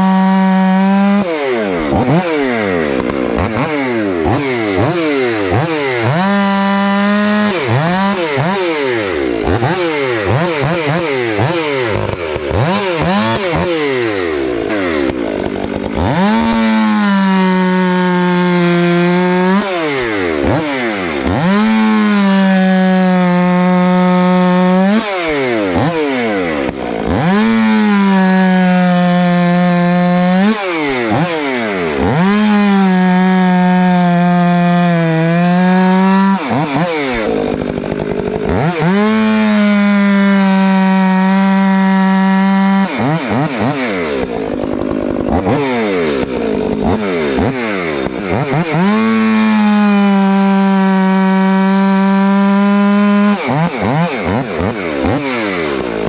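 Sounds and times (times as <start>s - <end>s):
chainsaw cutting into log: 0.0s - 56.0s.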